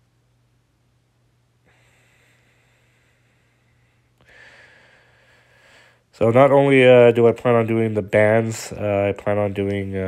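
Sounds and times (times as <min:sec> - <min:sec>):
faint breath drawn in: 0:01.6 - 0:06.1.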